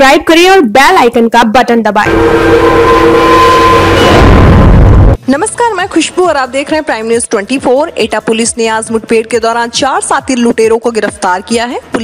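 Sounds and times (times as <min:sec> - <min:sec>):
held horn-like chord: 0:02.1 - 0:05.2
rushing whoosh: 0:02.1 - 0:05.2.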